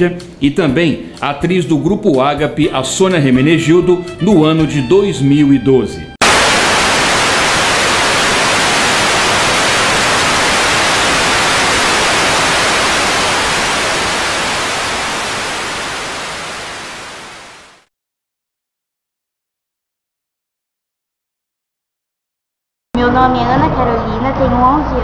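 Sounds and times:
television static hiss: 6.2 - 17.9.

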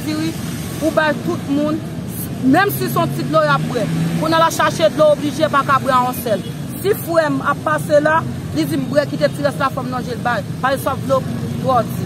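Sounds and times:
street traffic hum: 0.0 - 12.0
woman speaking: 0.0 - 12.0.

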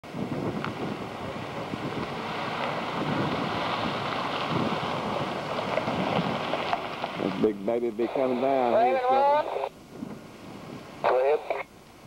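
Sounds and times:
wind buffeting microphone: 0.0 - 11.1.

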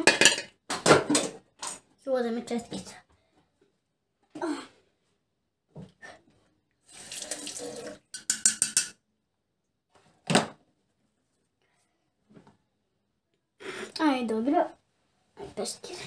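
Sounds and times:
tap water splashing in sink: 7.0 - 8.9.

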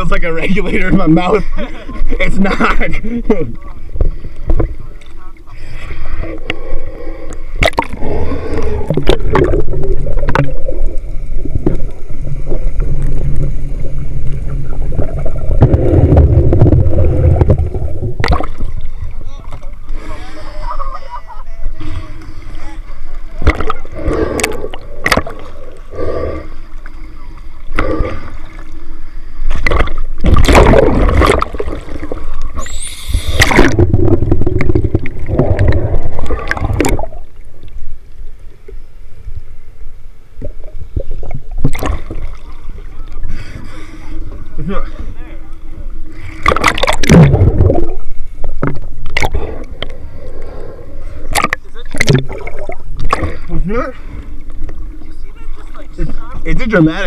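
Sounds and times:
sea water sloshing and splashing: 0.7 - 21.2, 21.8 - 38.6, 40.4 - 56.9
underwater gurgling and bubbling: 2.8 - 20.9, 21.6 - 39.6, 40.2 - 57.0
rush of bubbles: 6.2 - 19.1, 23.4 - 28.7, 29.5 - 37.5, 40.4 - 43.9, 46.1 - 53.6
underwater clicks: 7.3 - 8.0, 8.6 - 11.0, 15.0 - 18.8, 23.4 - 25.9, 29.5 - 37.8, 46.3 - 50.5, 51.2 - 53.4.

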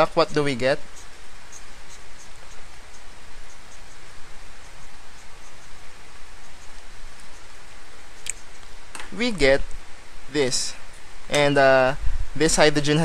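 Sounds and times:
marker drawing on paper: 0.0 - 8.8.

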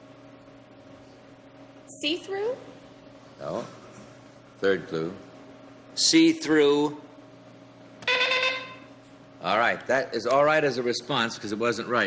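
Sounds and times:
game show buzzer: 8.0 - 8.9.

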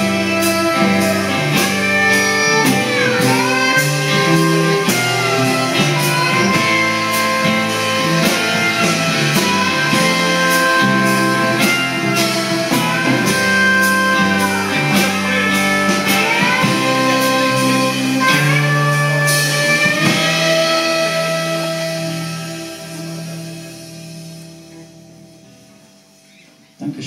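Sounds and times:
live rock band playing: 0.0 - 27.0.

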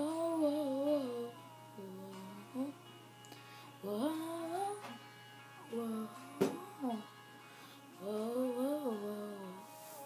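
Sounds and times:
girl humming: 0.0 - 2.9
girl singing: 0.0 - 10.0.

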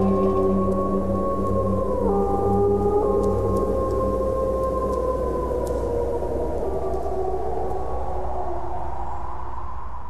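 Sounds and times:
low steady drone: 0.0 - 8.4
wolves howling: 0.0 - 9.0.

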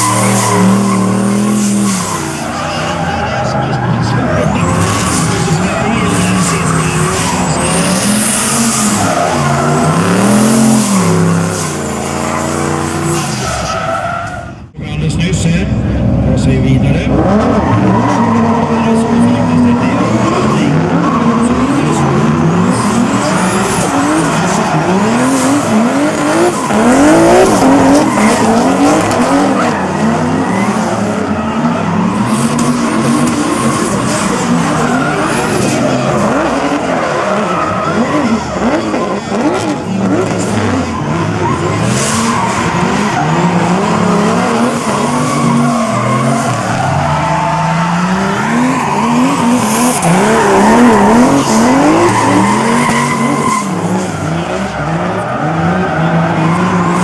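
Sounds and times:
tyres squealing and skidding: 0.0 - 14.7, 16.7 - 57.0
car engines revving hard: 0.0 - 57.0.

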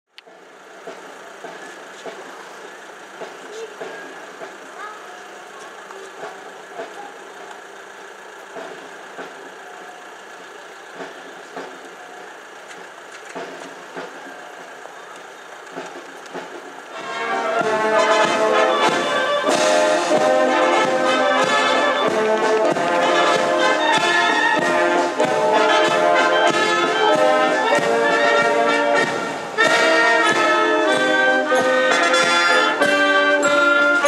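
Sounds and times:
vehicle running: 0.1 - 34.0
people talking: 0.8 - 34.0
military brass band playing: 16.9 - 34.0.

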